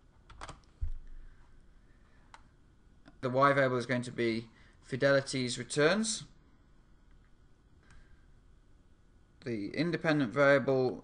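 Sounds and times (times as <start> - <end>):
computer keyboard keystrokes: 0.3 - 0.7.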